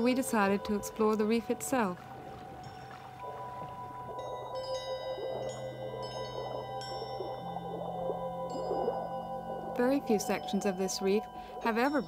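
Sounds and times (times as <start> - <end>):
soft sustained tones: 0.0 - 12.0.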